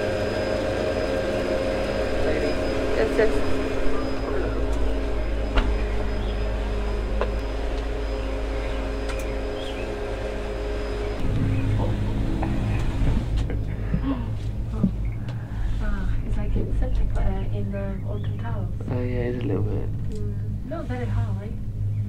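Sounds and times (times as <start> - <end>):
low rumble: 0.0 - 22.0
machinery humming: 0.0 - 22.0.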